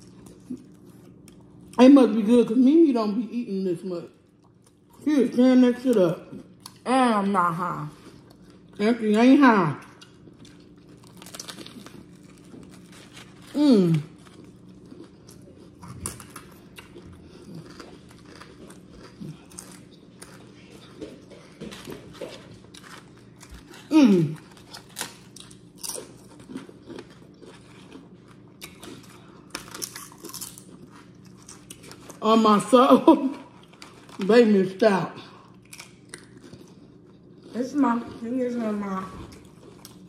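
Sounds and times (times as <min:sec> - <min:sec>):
crisp chewing crunches: 0:09.8 - 0:32.2, 0:33.5 - 0:34.3, 0:35.4 - 0:38.2, 0:39.2 - 0:40.0.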